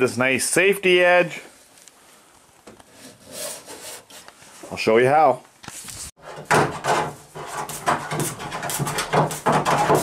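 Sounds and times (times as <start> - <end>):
scraping and rubbing trim: 2.9 - 4.6, 5.7 - 10.0.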